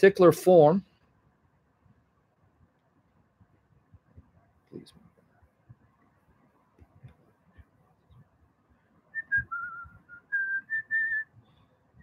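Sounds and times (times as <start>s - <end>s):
man whistling softly: 9.1s - 12.0s.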